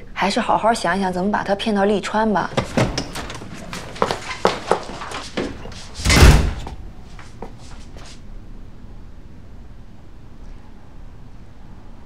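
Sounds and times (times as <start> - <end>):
door knock and rattle: 2.5 - 6.8.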